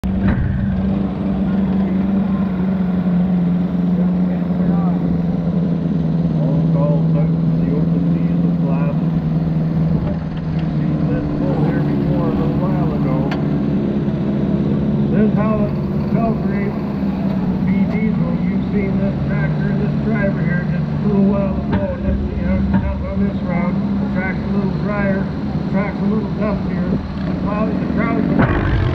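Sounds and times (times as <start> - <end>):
diesel tractor engine idling: 0.0 - 28.9
voices talking: 6.2 - 9.3, 10.6 - 13.7, 15.1 - 28.9.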